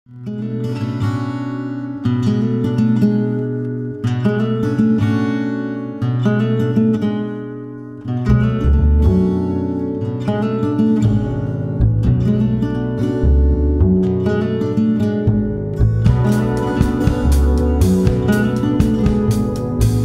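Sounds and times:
acoustic guitar strumming chords: 0.1 - 20.0
low bass: 8.3 - 9.7, 11.0 - 20.0.

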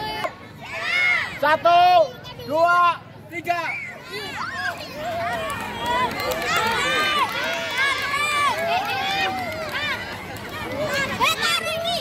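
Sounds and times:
children shouting and cheering: 3.8 - 12.0.

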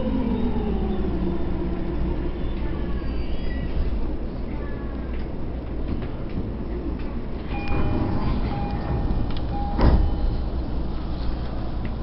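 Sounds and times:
train low rumble: 0.0 - 12.0
train doors thudding shut: 7.4 - 10.9
door warning beeps: 7.5 - 10.5.

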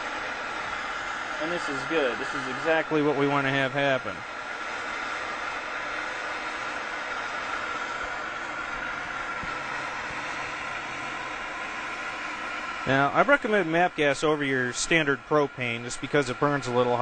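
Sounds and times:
blowtorch flame hissing: 0.0 - 17.0.

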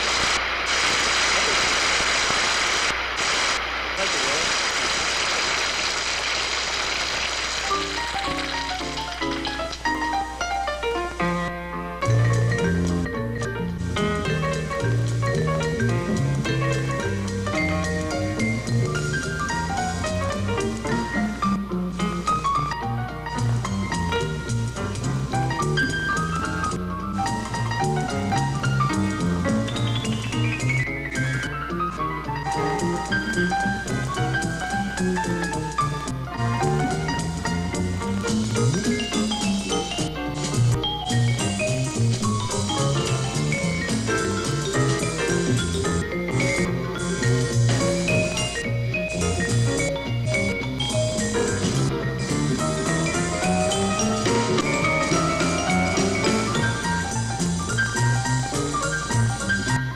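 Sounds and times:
studio audience applauding: 0.0 - 9.5
jazz piano playing: 6.2 - 59.9
drums: 6.4 - 59.9.

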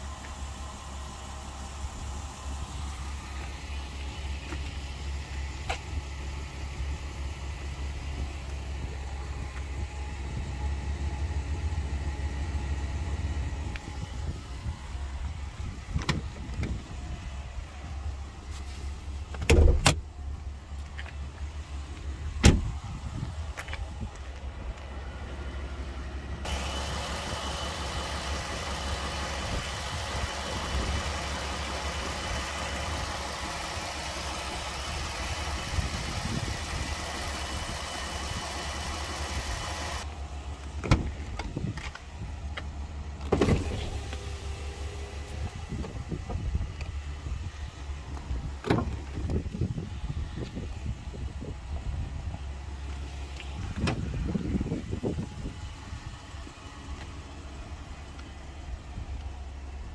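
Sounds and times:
pickup engine idling: 0.0 - 59.9.

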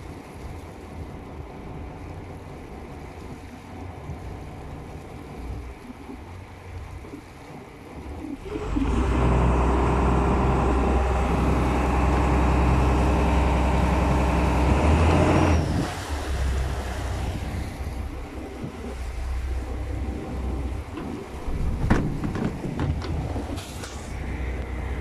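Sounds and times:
water noise: 0.0 - 25.0
wind: 0.0 - 25.0
boat engine droning: 7.8 - 25.0.

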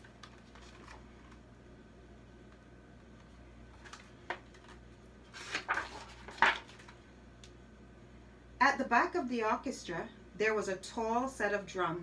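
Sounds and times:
paper rustles: 0.0 - 1.4, 3.2 - 7.0
low steady room hum: 0.0 - 12.0.

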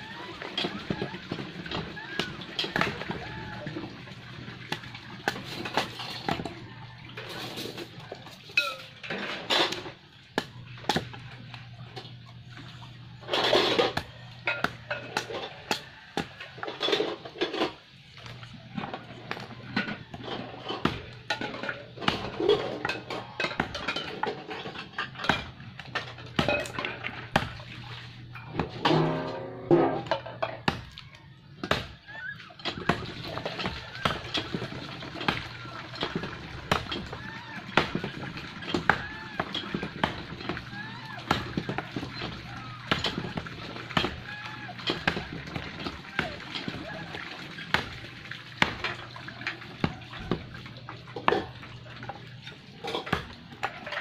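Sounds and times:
water splashing: 0.0 - 54.0
dishes clinking in metal basin: 4.6 - 10.0, 13.2 - 27.7, 28.3 - 30.8, 48.6 - 54.0.

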